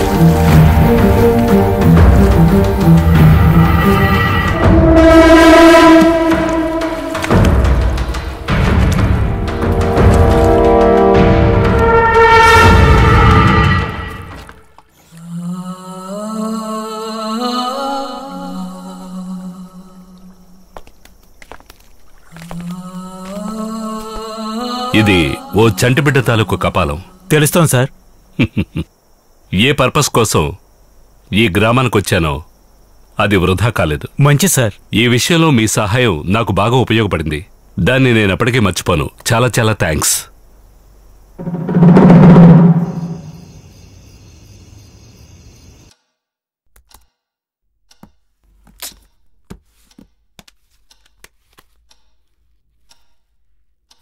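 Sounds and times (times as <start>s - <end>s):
low wordless vocal chant: 15.0s - 20.6s, 22.4s - 27.3s
dramatic drum roll with deep rumble: 41.4s - 43.4s.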